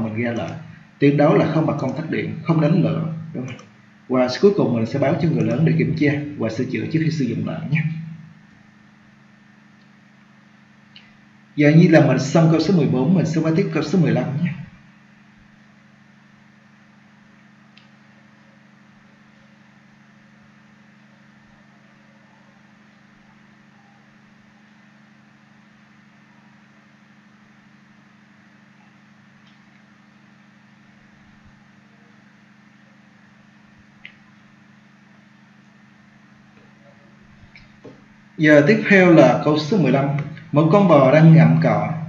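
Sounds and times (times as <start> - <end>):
low hum with hiss: 0.0 - 42.0
faint clicks: 10.9 - 11.2, 17.7 - 18.0, 34.0 - 34.4.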